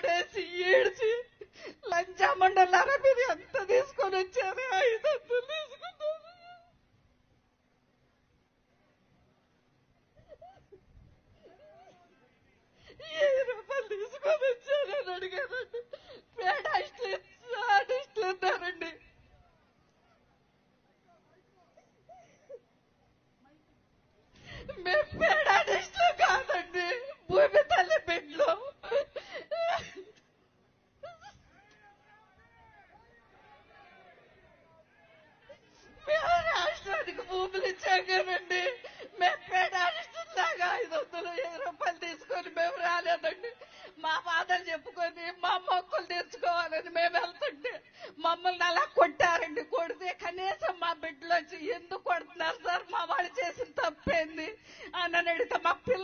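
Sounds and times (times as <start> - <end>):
woman speaking while crying: 0.0 - 5.8, 13.0 - 19.0, 24.8 - 30.0, 36.0 - 56.0.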